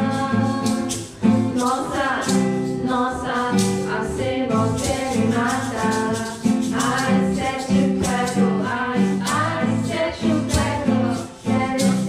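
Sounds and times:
acoustic guitar strumming: 0:00.0 - 0:12.0
ukuleles strumming chords: 0:00.0 - 0:12.0
woman singing: 0:00.0 - 0:12.0.

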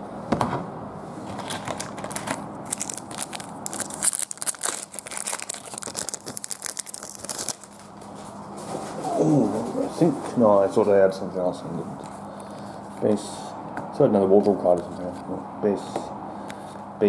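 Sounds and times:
wrapper crinkling and tearing: 0:01.4 - 0:07.9.

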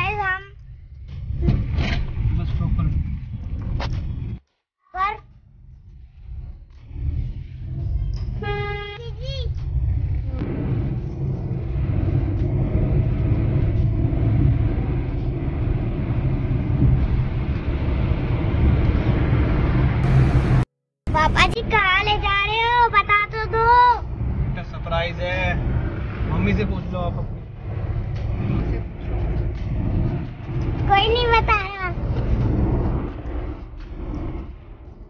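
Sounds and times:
car road and engine rumble: 0:05.0 - 0:35.0.

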